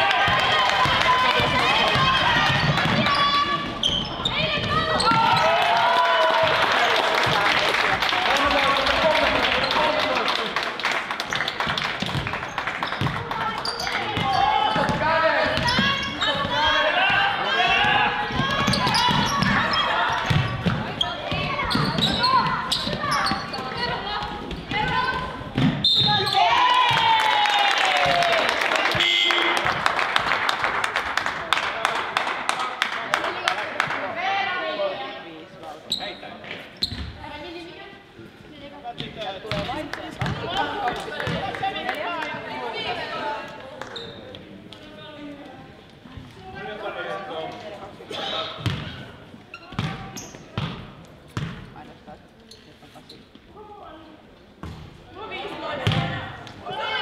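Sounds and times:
people shouting and calling: 0:00.0 - 0:06.7, 0:14.0 - 0:20.3
basketball bouncing on wooden court: 0:00.3 - 0:05.5, 0:12.9 - 0:17.2, 0:17.8 - 0:26.2, 0:39.0 - 0:40.5, 0:48.6 - 0:48.9, 0:49.7 - 0:50.8, 0:51.4 - 0:51.6, 0:55.8 - 0:56.1.

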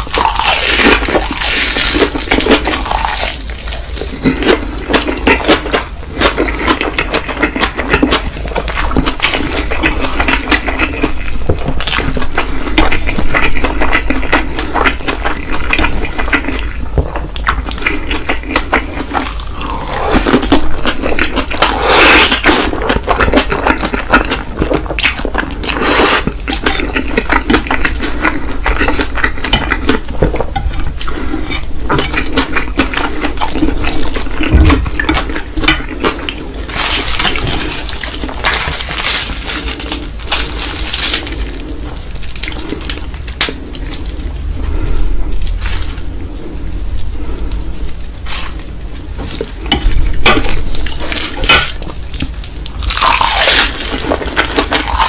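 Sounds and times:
wet chewing: 0:00.0 - 0:55.0.

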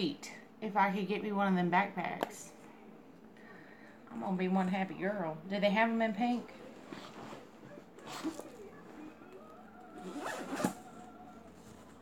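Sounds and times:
zipper rasp: 0:10.0 - 0:10.8.

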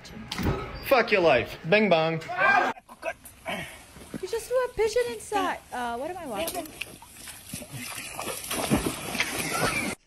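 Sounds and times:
water splashing and sloshing: 0:03.4 - 0:10.0
heavy splash: 0:06.7 - 0:10.0.

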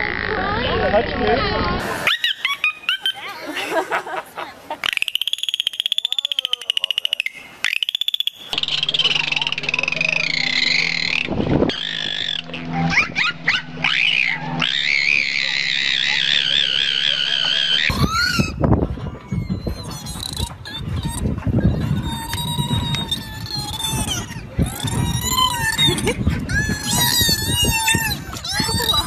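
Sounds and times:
dolphins whistling and chattering: 0:01.8 - 0:03.6, 0:04.8 - 0:29.0
fast pulsed buzz: 0:04.8 - 0:18.8
short rising chirps: 0:04.9 - 0:17.9
steady low hum: 0:08.3 - 0:29.0.

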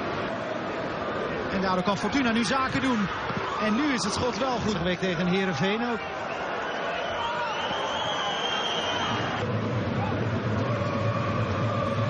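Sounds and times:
stadium crowd din: 0:00.0 - 0:12.0.

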